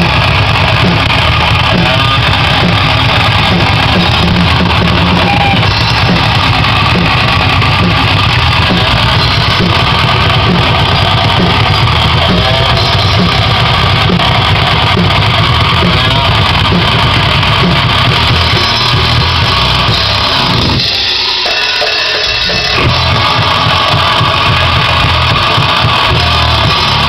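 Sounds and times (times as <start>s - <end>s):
distorted electric guitar: 0.0s - 27.0s
drum kit: 0.0s - 27.0s.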